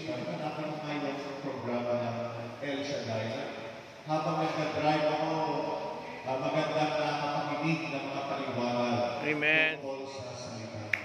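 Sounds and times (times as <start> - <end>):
man speaking over a pa system: 0.0 - 11.0.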